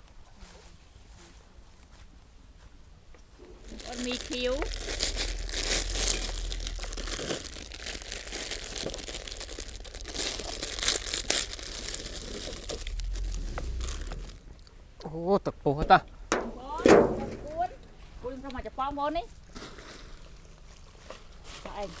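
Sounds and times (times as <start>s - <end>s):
plastic packets crinkling and tearing: 3.5s - 14.5s, 19.4s - 22.0s.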